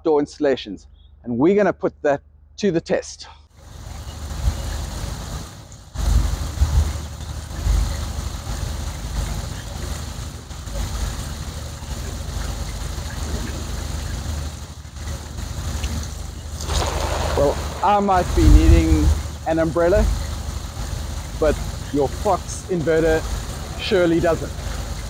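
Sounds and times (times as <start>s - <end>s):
water spraying from a hose: 3.6s - 25.0s
low rumble: 3.9s - 25.0s.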